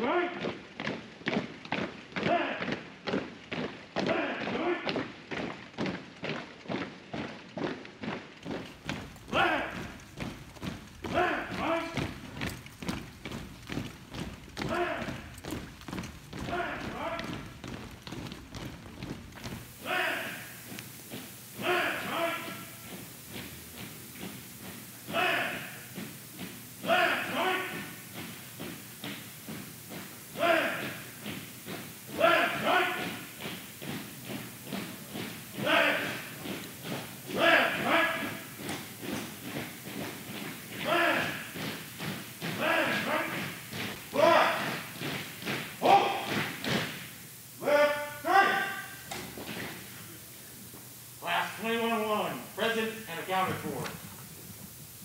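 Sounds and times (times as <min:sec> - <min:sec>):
marching footsteps on hard floor: 0:04.9 - 0:55.0
person shouting calls: 0:19.8 - 0:20.6, 0:25.1 - 0:25.8, 0:47.6 - 0:49.0.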